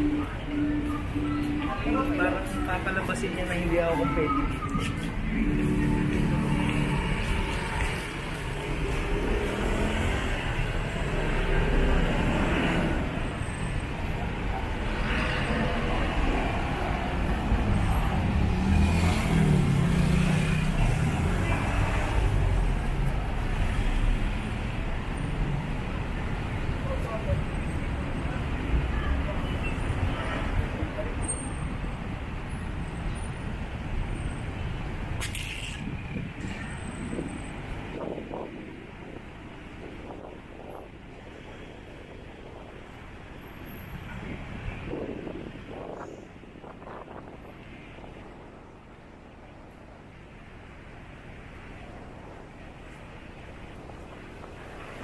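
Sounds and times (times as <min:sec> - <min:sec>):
passers-by talking: 0:00.0 - 0:18.4, 0:25.9 - 0:32.2
road traffic passing: 0:00.0 - 0:55.0.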